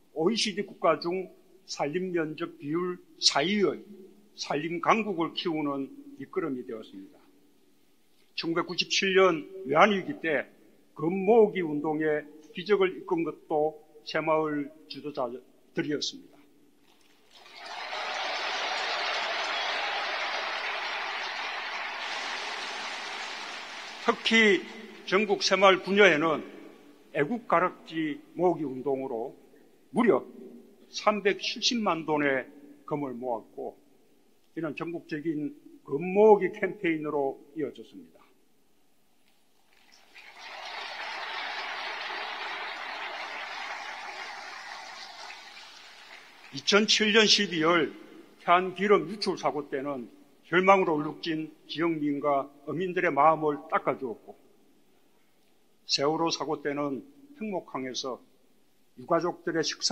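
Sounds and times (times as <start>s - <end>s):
audience applauding: 17.3s - 25.9s, 39.9s - 46.7s.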